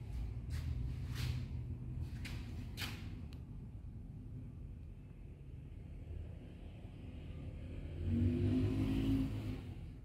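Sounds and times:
vehicle engine passing: 6.3s - 10.0s.

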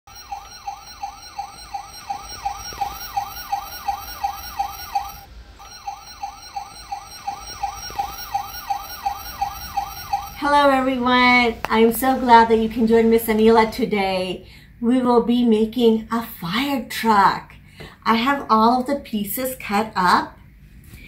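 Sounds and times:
toy electronic siren wailing: 0.1s - 12.7s.

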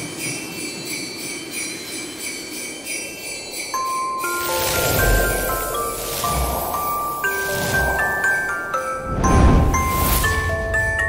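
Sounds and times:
sleigh bells jingling: 0.0s - 11.0s
chime note: 3.6s - 11.0s.

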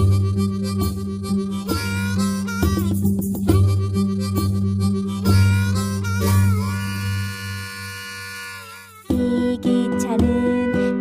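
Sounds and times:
harmonica chord: 0.0s - 11.0s.

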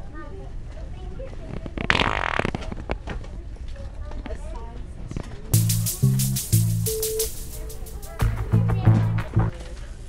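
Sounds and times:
fart-noise toy wet fart: 1.8s - 2.8s.

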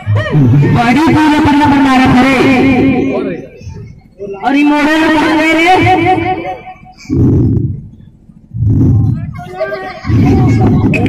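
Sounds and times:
low rumbling through microphone: 0.0s - 11.0s.

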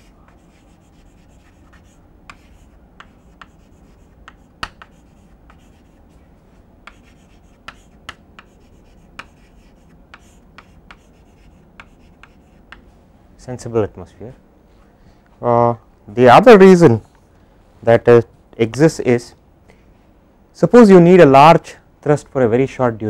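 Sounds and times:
chalk tapping and scratching on chalkboard: 0.0s - 13.0s.

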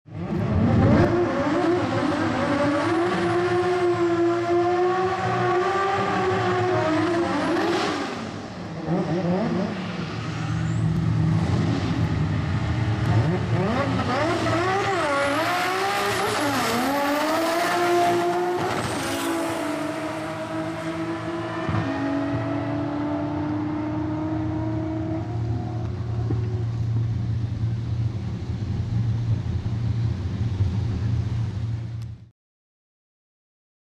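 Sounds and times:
race car engine accelerating: 0.1s - 27.8s
steady low hum: 25.9s - 32.3s.

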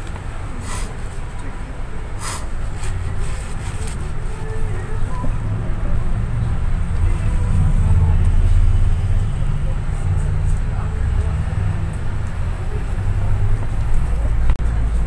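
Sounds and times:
bus engine and road rumble: 0.0s - 15.0s.

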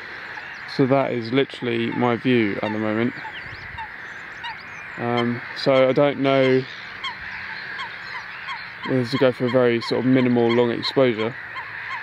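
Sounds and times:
soft low bird calls: 0.0s - 12.0s.

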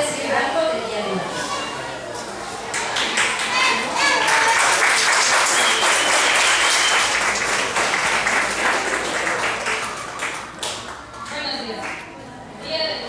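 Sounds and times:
audience applauding: 2.6s - 12.1s.

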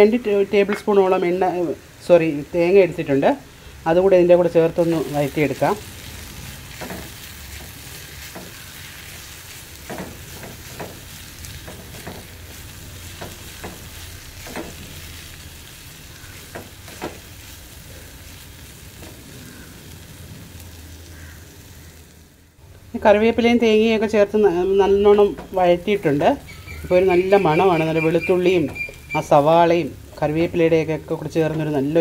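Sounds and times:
food sizzling in oil: 0.0s - 32.0s.

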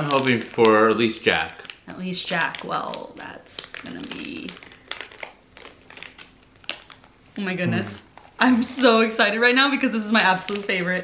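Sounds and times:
package crinkling and rustling: 0.0s - 7.4s, 8.1s - 8.9s, 10.0s - 11.0s.

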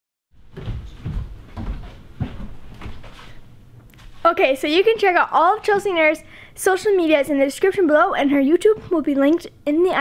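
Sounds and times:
dull thumps and knocks: 0.5s - 3.2s, 8.6s - 9.4s.

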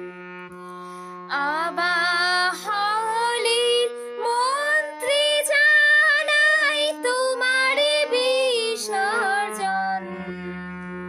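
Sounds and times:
harmonium playing: 0.0s - 11.0s
woman singing: 1.3s - 10.3s.

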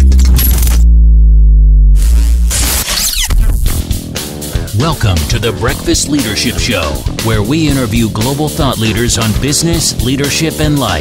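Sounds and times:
deep synth bass note: 0.0s - 2.8s.

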